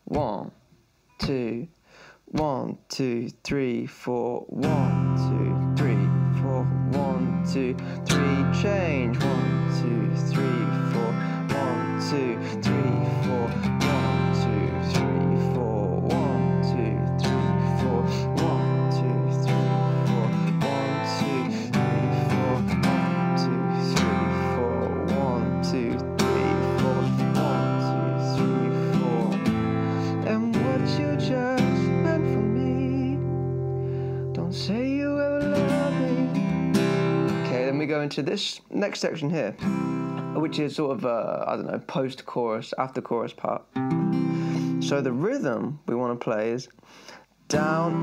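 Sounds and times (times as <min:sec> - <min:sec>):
acoustic guitar strumming: 0:04.6 - 0:38.1, 0:39.6 - 0:41.8, 0:43.7 - 0:45.5, 0:47.5 - 0:48.0.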